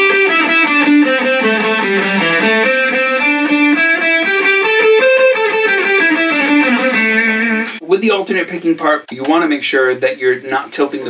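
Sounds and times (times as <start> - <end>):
electric guitar playing a scale: 0.0 - 7.8.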